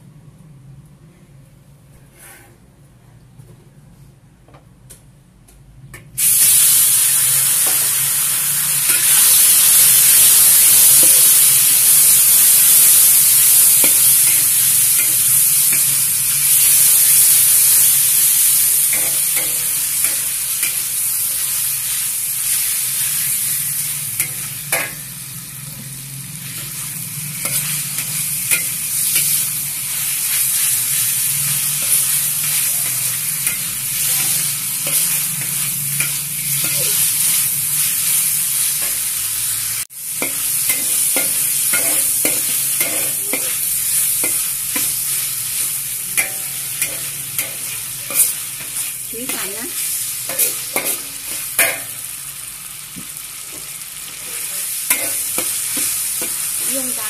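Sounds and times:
meat sizzling in hot oil: 0:06.2 - 0:57.0
metal spoon scraping pan: 0:46.2 - 0:49.6.

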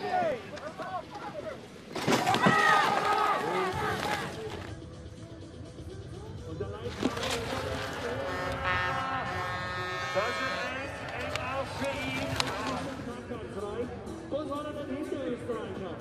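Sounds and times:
background music: 0:00.0 - 0:16.0
commentator speaking: 0:06.5 - 0:16.0.

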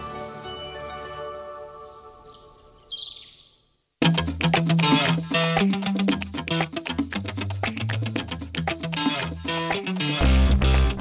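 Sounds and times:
jingle music: 0:00.0 - 0:02.0
high bird chirps: 0:01.9 - 0:03.6.

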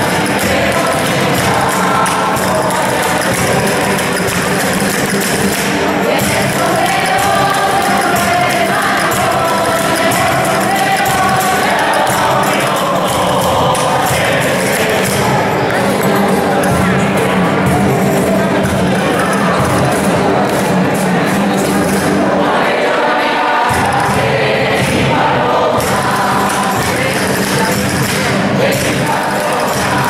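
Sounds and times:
congregation singing: 0:00.0 - 0:30.0
strummed acoustic guitars: 0:00.0 - 0:30.0.

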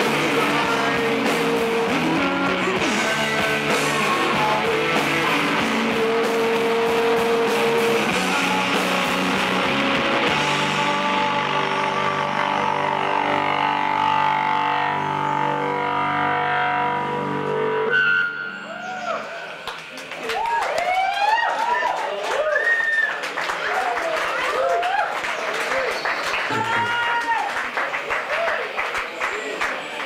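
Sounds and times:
ringing guitar chords: 0:00.0 - 0:19.7
live rock band playing: 0:00.0 - 0:20.0.

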